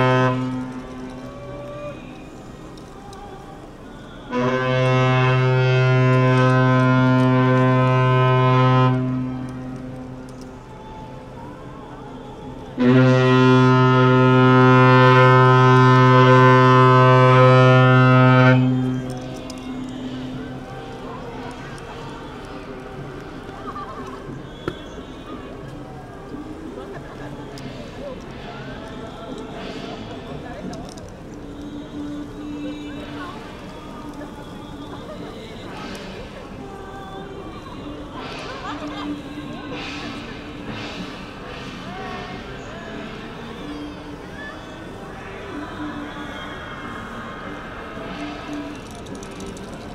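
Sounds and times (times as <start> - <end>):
ship horn blast: 0.0 - 2.5, 4.2 - 11.4, 12.2 - 23.5
crowd voices: 0.0 - 49.9
music: 0.0 - 49.9
wooden clappers rattling: 48.4 - 49.9.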